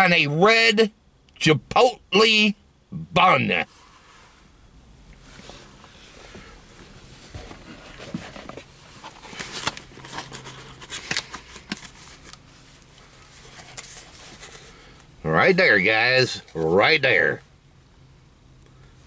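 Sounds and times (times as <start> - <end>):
cardboard box rustling: 6.3 - 12.4, 13.2 - 14.8.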